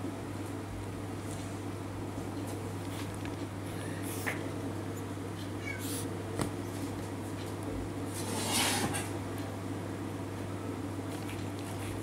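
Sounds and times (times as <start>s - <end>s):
steady low hum: 0.0s - 12.0s
kitten mewing: 5.4s - 6.1s.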